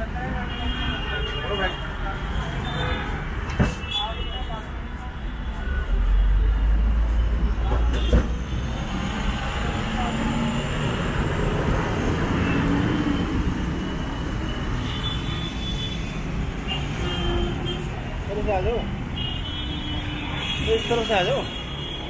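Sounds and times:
vehicles passing: 0.0 - 22.0.

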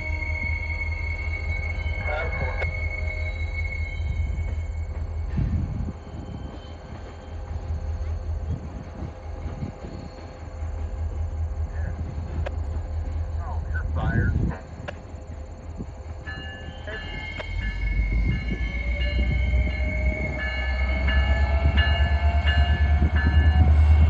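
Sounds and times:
high-pitched wheel squeal: 0.0 - 7.2
freight cars rumbling: 0.0 - 24.0.

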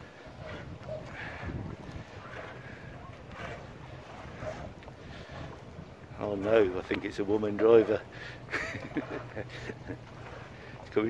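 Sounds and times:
boat engine humming: 0.0 - 11.0.

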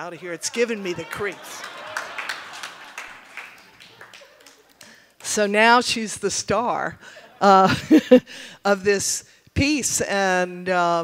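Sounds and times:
audience laughter and murmuring: 0.0 - 4.8.

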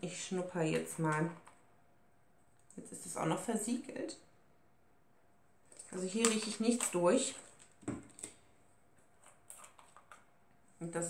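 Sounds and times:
plastic bottles clicking and tapping: 9.2 - 10.2.

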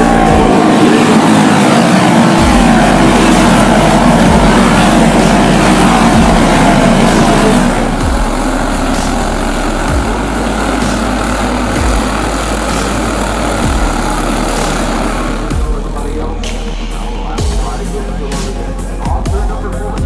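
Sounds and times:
kart engines racing past: 0.0 - 17.2
music with deep bass beat: 0.0 - 20.0.

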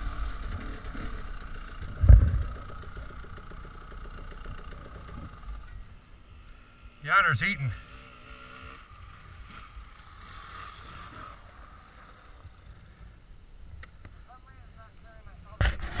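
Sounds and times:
low wind rumble: 0.0 - 3.4
faint dirt bike engine: 0.0 - 16.0.

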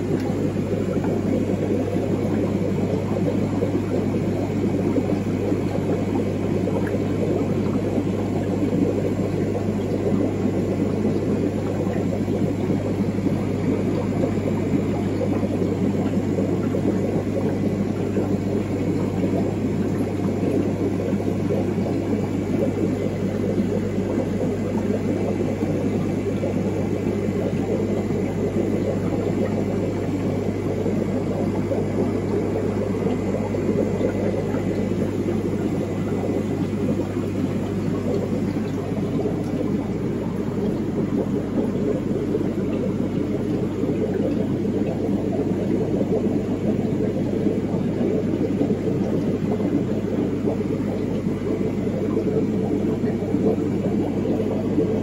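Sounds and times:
aquarium air pumps humming: 0.0 - 55.0.

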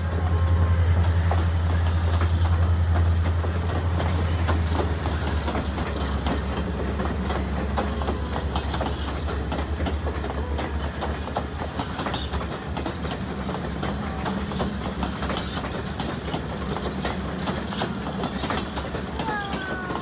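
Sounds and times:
train rumbling past: 0.0 - 20.0
wheels clacking over rails: 0.0 - 20.0.

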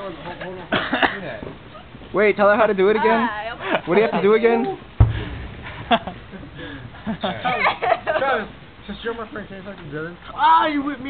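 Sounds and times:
harsh burst of breath: 6.5 - 7.0.

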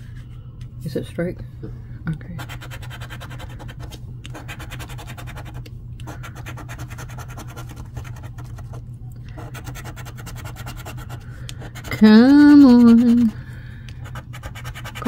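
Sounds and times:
coin scraping scratch-off ticket: 9.4 - 13.3.

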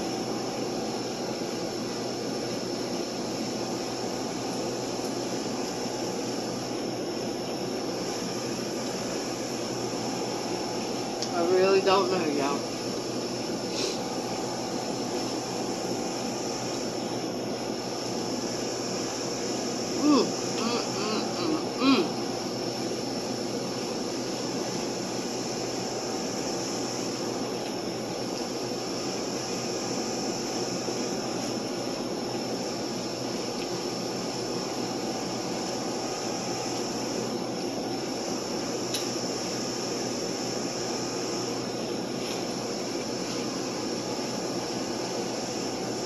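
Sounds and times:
air conditioning hum: 0.0 - 46.0
faint high whine: 0.0 - 46.0.

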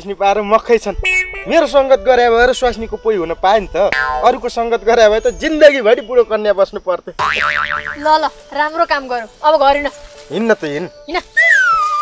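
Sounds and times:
comic boing sound effect: 3.9 - 4.4, 7.2 - 8.0.

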